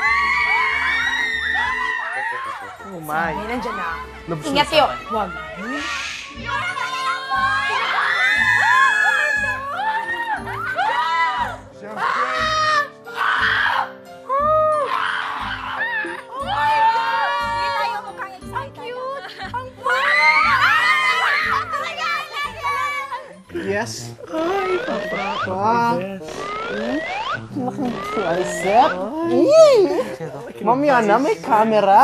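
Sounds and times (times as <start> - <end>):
girls squealing and shouting: 0.0 - 23.5, 24.3 - 30.1
background music with steady beat: 0.0 - 32.0
background music with low beat: 23.4 - 32.0.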